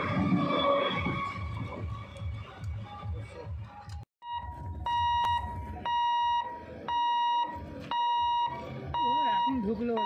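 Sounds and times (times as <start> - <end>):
level crossing alarm beeping: 4.2 - 10.0.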